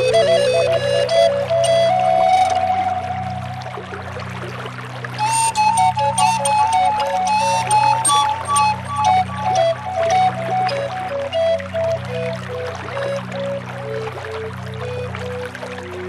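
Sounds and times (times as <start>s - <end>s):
flute playing slow melody: 0.0s - 16.0s.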